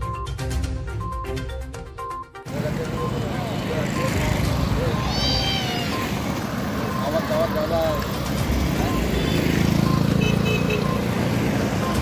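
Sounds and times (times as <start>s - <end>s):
roadside traffic noise: 0.1s - 12.0s
faint voices: 2.5s - 9.2s
motorcycle engines passing: 2.5s - 12.0s.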